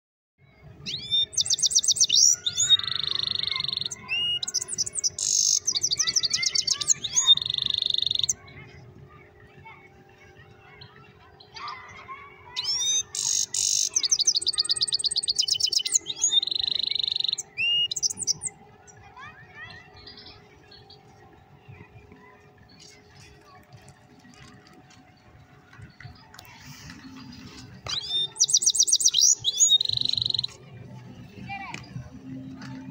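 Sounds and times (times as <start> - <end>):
songbird singing trills: 0.8 - 8.4, 12.6 - 23.4, 25.8 - 30.6.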